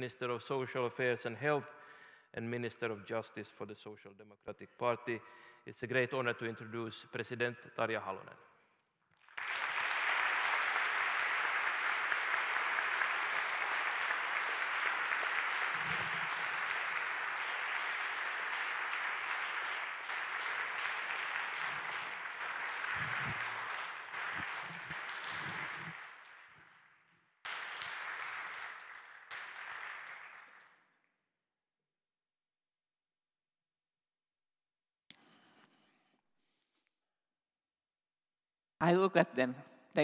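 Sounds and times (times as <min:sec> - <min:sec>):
audience applauding: 0:09.2 - 0:30.8.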